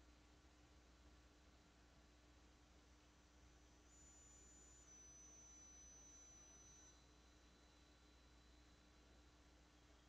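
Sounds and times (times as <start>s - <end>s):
faint electrical hum: 0.0s - 10.0s
faint high-pitched whine: 0.0s - 10.0s.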